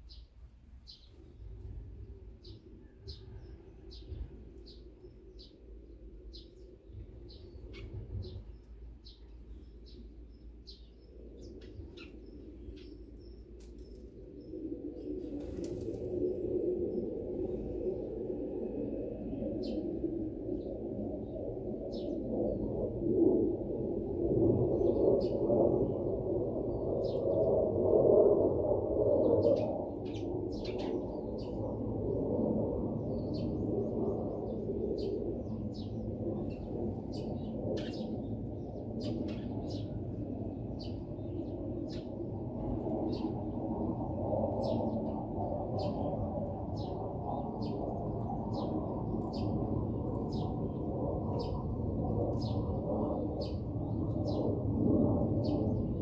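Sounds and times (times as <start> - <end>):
small birds chirping: 0.0 - 17.1, 29.2 - 31.6, 33.0 - 42.2, 46.7 - 51.7.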